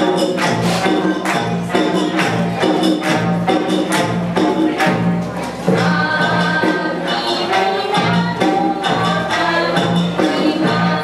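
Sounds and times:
group singing in unison: 0:05.7 - 0:11.0.

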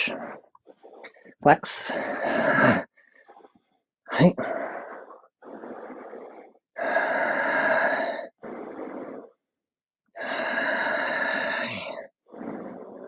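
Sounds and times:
person breathing deeply: 0:00.0 - 0:09.5, 0:10.1 - 0:13.0.

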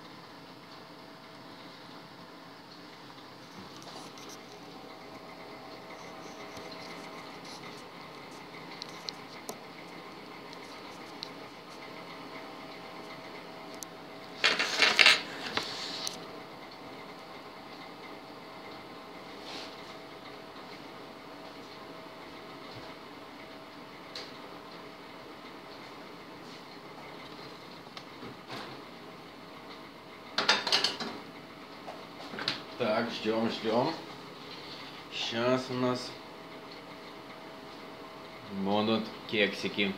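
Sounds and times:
microwave oven humming: 0:00.0 - 0:39.9.

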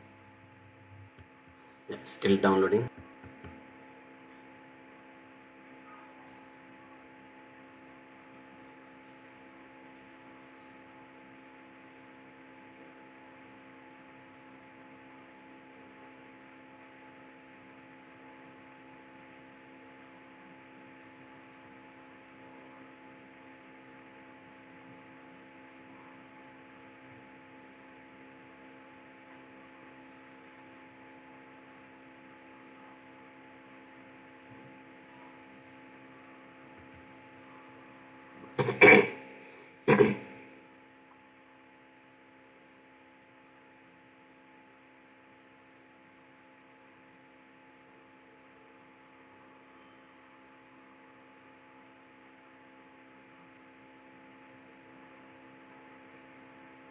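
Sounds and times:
faint electrical hum: 0:00.0 - 0:56.9.

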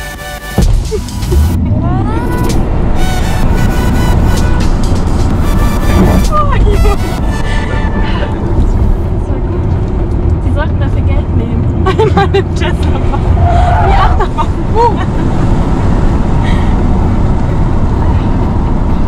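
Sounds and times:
background music: 0:00.0 - 0:08.4
road and wind noise rumble: 0:00.0 - 0:19.0
passenger laughing: 0:00.7 - 0:09.2, 0:11.7 - 0:15.6.

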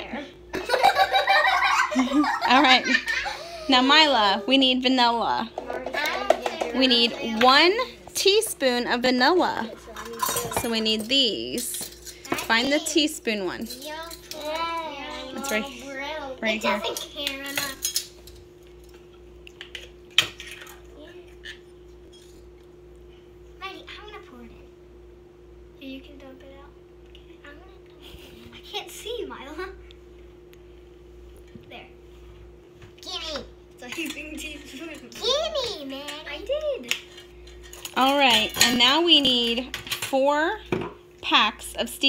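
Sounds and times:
steady low hum: 0:00.0 - 0:42.0
child's voice: 0:05.6 - 0:07.5, 0:13.8 - 0:17.8, 0:33.0 - 0:37.0
metal spoons clinking on a bowl: 0:10.0 - 0:12.4, 0:13.6 - 0:14.5, 0:16.8 - 0:18.4.

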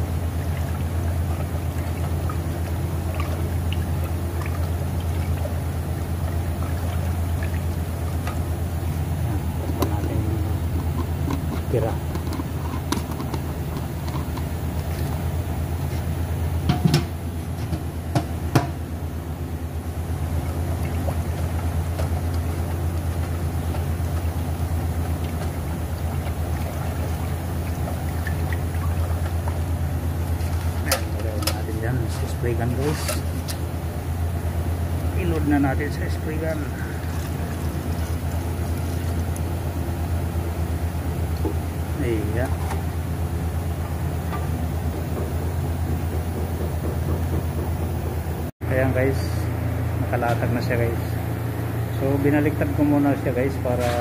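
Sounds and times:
low machine hum: 0:00.0 - 0:54.0
stick stirring paint in can: 0:00.4 - 0:16.2
sharp knocks: 0:44.3 - 0:48.2.

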